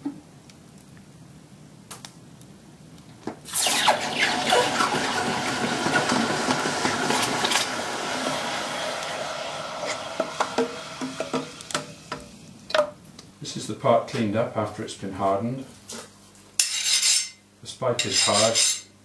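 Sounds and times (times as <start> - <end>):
crackles: 1.8 - 3.8
hot steel hissing in water: 3.5 - 12.6.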